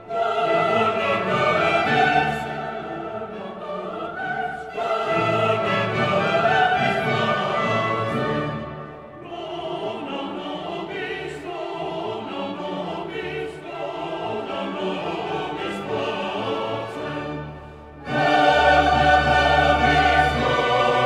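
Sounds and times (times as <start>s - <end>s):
choir singing: 0.0s - 21.0s
orchestra strings: 0.0s - 21.0s.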